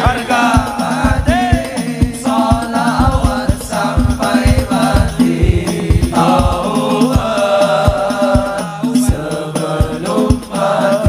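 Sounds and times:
chant-like singing: 0:00.0 - 0:11.0
drum strikes: 0:00.0 - 0:11.0
hand percussion: 0:00.0 - 0:11.0.

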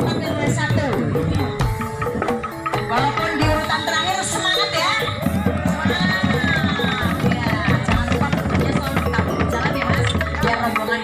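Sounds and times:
bass drum beating: 0:00.0 - 0:10.7
clattering bamboo percussion: 0:00.0 - 0:11.0
voices: 0:02.7 - 0:11.0.

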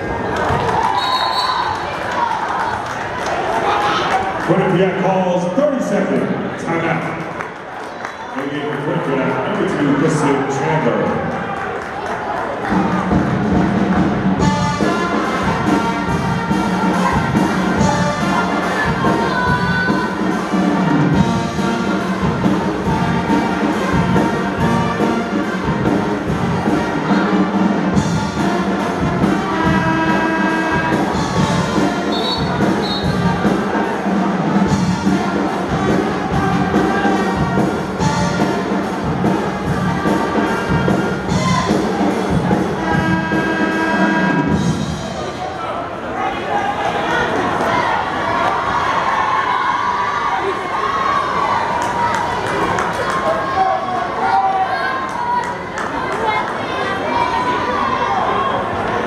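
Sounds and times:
brass band playing upbeat tune: 0:12.7 - 0:45.2.

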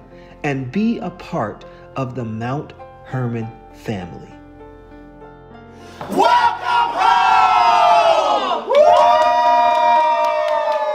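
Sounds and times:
group shouting and cheering: 0:05.9 - 0:10.9.

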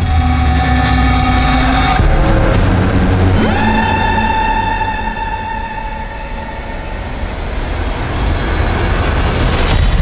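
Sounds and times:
sustained synth chords: 0:00.0 - 0:09.4
rising sweep: 0:00.7 - 0:09.6
deep low rumble: 0:01.0 - 0:09.6.

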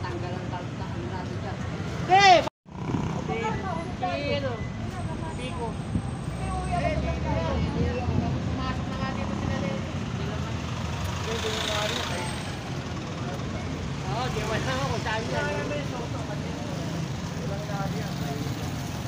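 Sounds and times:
low engine rumble of traffic: 0:00.0 - 0:19.0.

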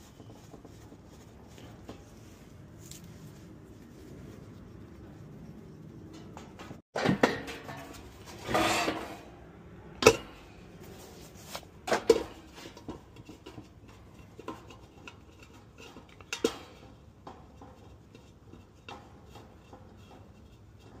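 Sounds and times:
hand tool clanking on metal: 0:06.1 - 0:09.3, 0:11.8 - 0:20.4
metal scraping rub: 0:07.5 - 0:09.4.

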